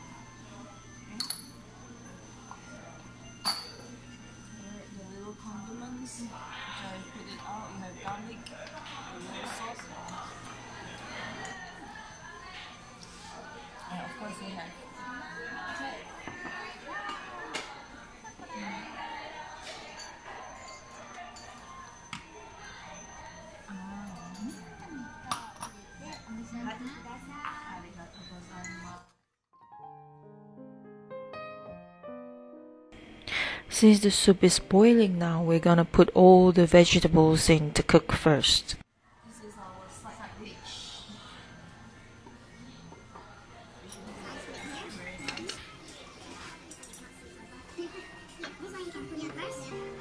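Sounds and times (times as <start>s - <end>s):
distant voices: 0.0s - 29.0s, 39.2s - 50.0s
tableware clinking: 0.9s - 4.6s, 6.5s - 13.6s, 15.0s - 29.0s, 42.8s - 50.0s
spoon clinking on ceramic pot: 1.2s - 1.6s, 3.4s - 4.0s
soft music: 18.5s - 29.0s, 29.6s - 35.8s, 40.3s - 50.0s.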